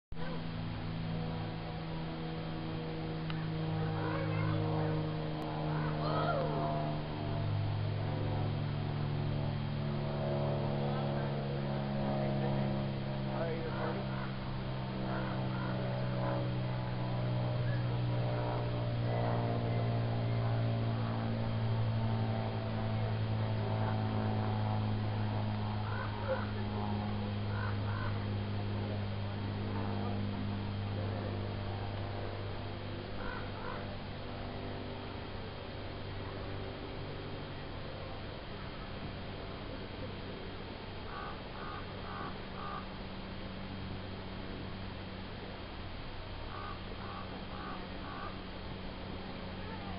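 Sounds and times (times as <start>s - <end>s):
low hum: 0.1s - 49.9s
indistinct chatter of people: 0.2s - 49.9s.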